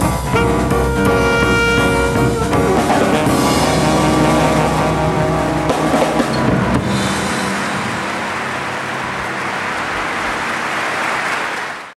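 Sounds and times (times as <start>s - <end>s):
jazz quartet closing chord: 0.0s - 9.0s
audience applause: 8.1s - 11.9s.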